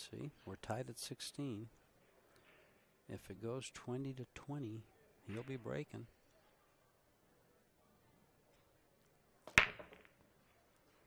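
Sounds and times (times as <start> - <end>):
pool balls cracking and clattering: 9.4 - 11.0.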